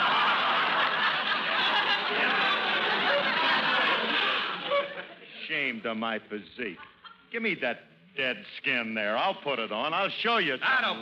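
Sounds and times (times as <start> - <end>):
studio audience laughing: 0.0 - 5.4, 6.6 - 7.3.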